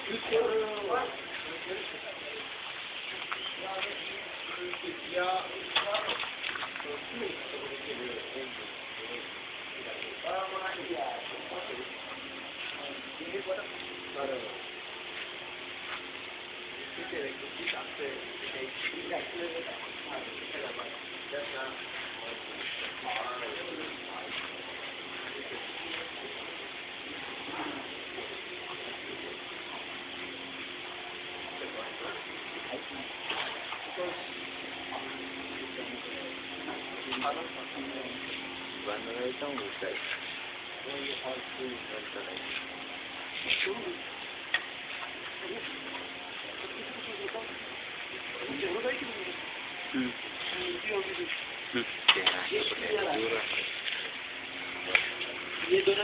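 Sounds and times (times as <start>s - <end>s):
faint low hum: 0.0s - 56.0s
people chattering: 0.0s - 56.0s
people talking indistinctly: 0.0s - 56.0s
steady hiss: 0.0s - 56.0s.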